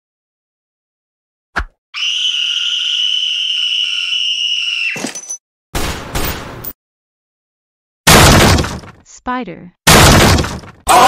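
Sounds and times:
girl screaming: 2.0s - 5.0s.

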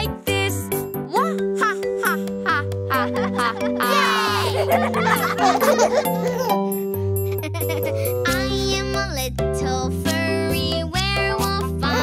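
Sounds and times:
bouncy children's song music: 0.0s - 12.0s
children giggling and laughing: 1.6s - 8.2s.

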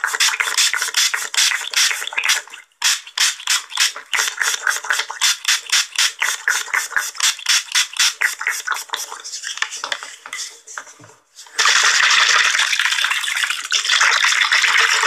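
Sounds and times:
spray bottle hissing sprays: 0.0s - 10.6s.

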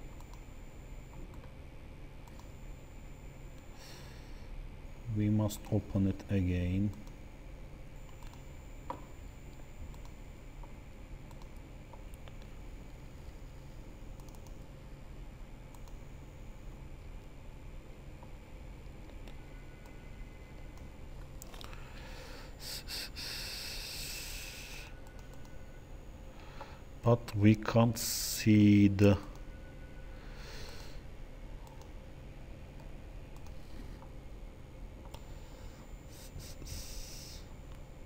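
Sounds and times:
steady low hum: 0.0s - 38.0s
computer mouse clicks: 2.2s - 2.5s, 6.9s - 7.2s, 8.0s - 12.5s, 14.1s - 14.7s, 15.7s - 16.0s, 25.0s - 25.6s, 31.6s - 32.0s, 32.8s - 34.1s, 35.0s - 35.3s
person breathing: 3.8s - 4.5s, 21.6s - 24.9s, 26.3s - 26.9s, 30.1s - 31.1s, 35.2s - 37.5s.

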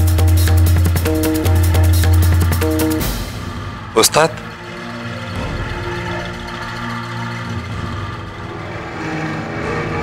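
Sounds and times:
sustained low music chords: 0.0s - 10.0s.

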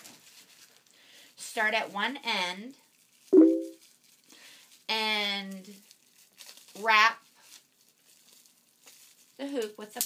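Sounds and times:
bubble wrap crinkling: 0.0s - 1.3s, 1.9s - 10.0s.

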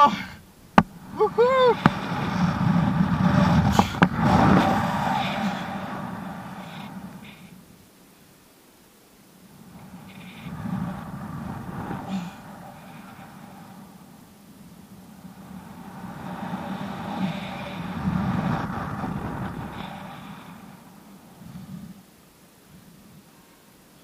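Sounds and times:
wind rushing over microphone: 0.0s - 8.0s, 9.2s - 23.3s.

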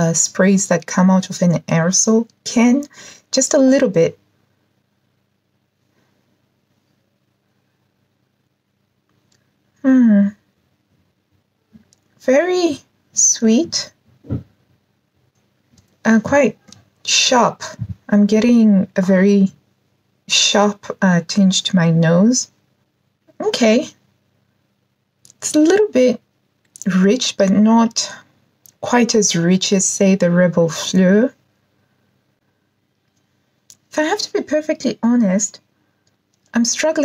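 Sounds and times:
woman speaking: 0.0s - 4.2s, 9.8s - 10.4s, 12.2s - 14.0s, 16.0s - 19.6s, 20.3s - 22.5s, 23.3s - 24.0s, 25.3s - 26.2s, 26.8s - 31.4s, 33.7s - 35.6s, 36.5s - 37.0s
faint small clicks: 11.8s - 12.2s, 36.0s - 36.5s.

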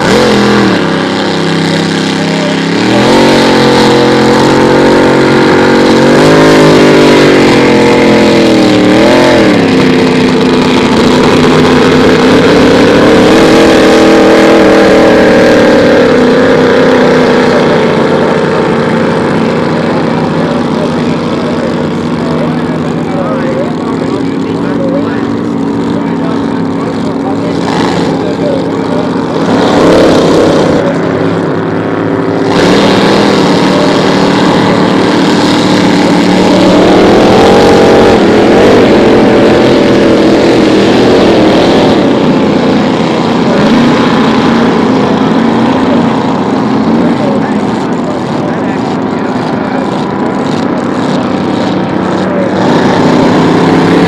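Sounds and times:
racing boat engines revving: 0.0s - 54.0s.

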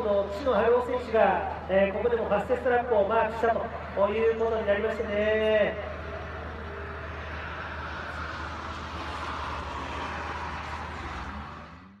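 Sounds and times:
race car passing by: 3.5s - 12.0s.

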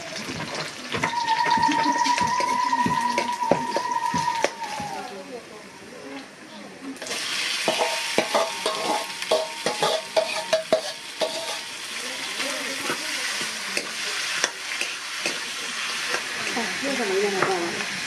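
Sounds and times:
food sizzling in hot oil: 0.0s - 5.3s, 7.0s - 18.0s
steel ladle clinking against pan: 7.7s - 11.8s.

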